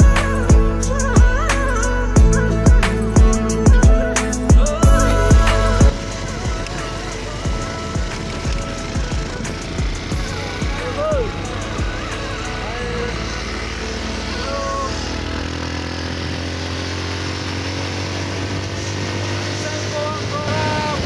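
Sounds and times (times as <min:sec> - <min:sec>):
music with singing voice: 0:00.0 - 0:15.2
motorcycle running: 0:00.0 - 0:21.0.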